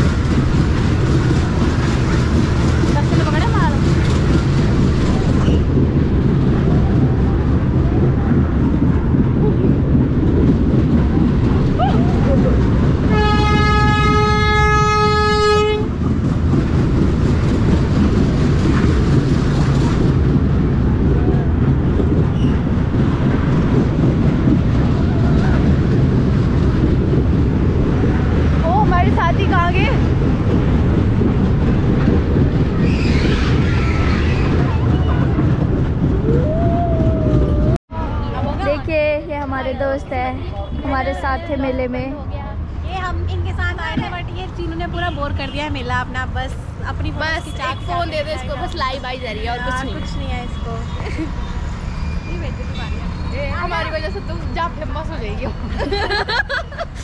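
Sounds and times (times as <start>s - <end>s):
ride cars rumbling and rattling: 0.0s - 57.0s
steady horn tone: 13.0s - 16.0s.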